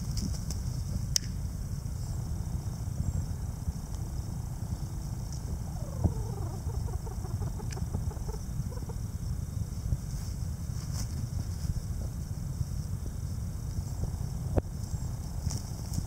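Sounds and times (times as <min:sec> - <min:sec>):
low rumble: 0:01.4 - 0:10.7
quail calling: 0:05.5 - 0:09.1.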